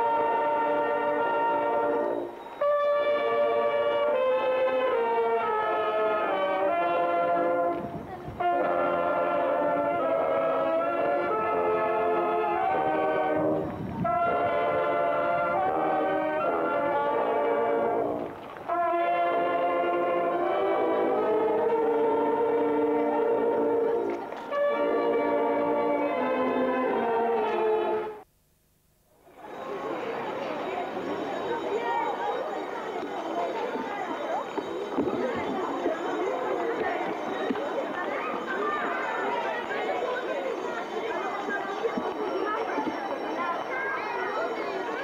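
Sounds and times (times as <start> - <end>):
brass band playing a hymn: 0.0 - 28.3.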